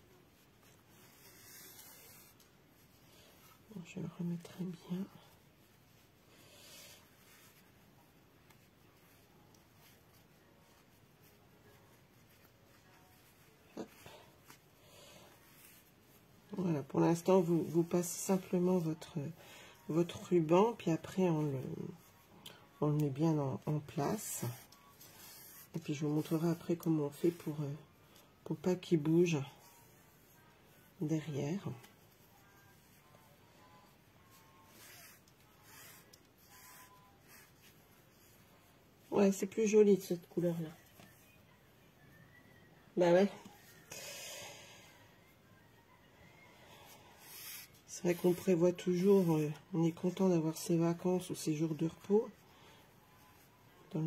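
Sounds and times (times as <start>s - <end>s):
ribbon and cardstock rustling: 0.1s - 41.4s, 46.3s - 54.0s.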